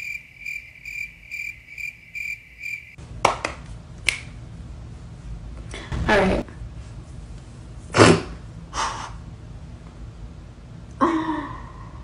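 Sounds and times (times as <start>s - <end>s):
crickets chirping: 0.0s - 3.0s.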